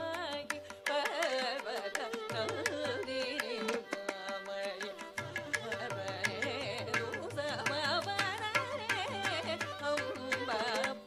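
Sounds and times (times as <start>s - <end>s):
person singing classical vocal: 0.0s - 11.0s
violin: 0.0s - 11.0s.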